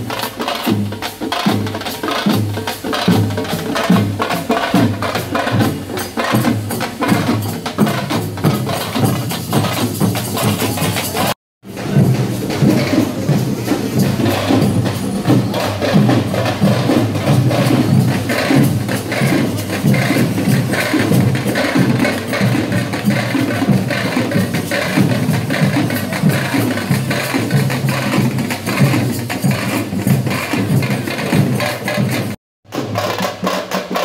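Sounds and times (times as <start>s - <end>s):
barrel drums beaten with sticks: 0.0s - 34.0s.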